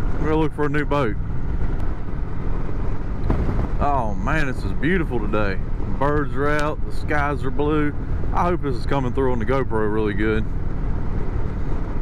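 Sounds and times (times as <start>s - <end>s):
motorcycle engine rumble: 0.0s - 12.0s.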